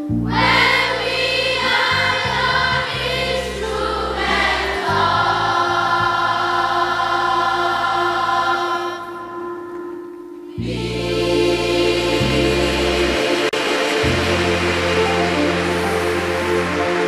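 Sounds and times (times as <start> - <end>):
low accompaniment: 0.0 - 17.0
children's choir singing: 0.2 - 17.0.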